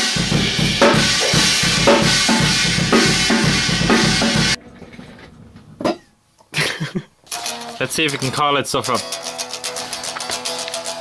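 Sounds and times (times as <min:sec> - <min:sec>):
person coughing: 0:06.5 - 0:07.1.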